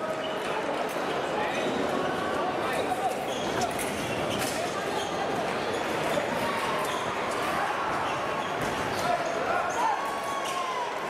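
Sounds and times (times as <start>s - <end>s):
murmur of voices in a hall: 0.0s - 11.0s
shoes squeaking on floor: 3.1s - 7.2s.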